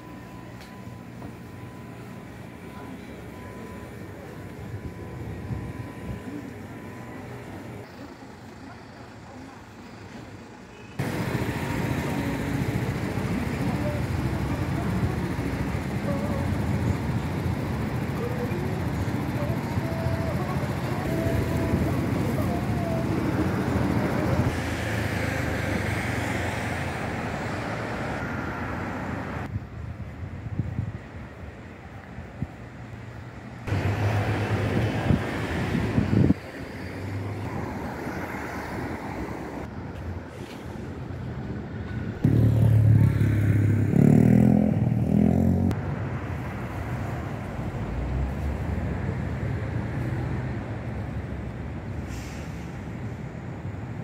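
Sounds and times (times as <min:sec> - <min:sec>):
faint voices: 0:00.0 - 0:26.0
vehicles running past: 0:00.0 - 0:29.7, 0:30.3 - 0:54.0.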